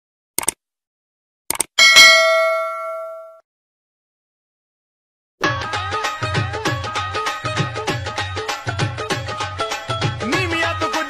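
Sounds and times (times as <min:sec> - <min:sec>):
double mouse click: 0:01.5 - 0:01.7
bright bell ding: 0:01.8 - 0:03.4.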